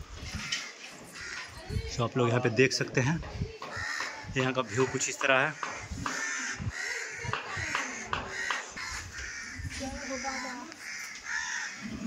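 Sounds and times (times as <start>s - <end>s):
crows cawing: 0.2s - 1.8s, 3.7s - 12.0s
faint people's voices: 0.4s - 11.3s.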